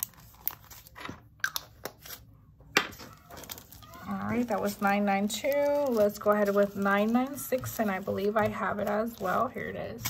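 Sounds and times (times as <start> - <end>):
plastic bag clicks and crinkles: 3.2 - 10.0.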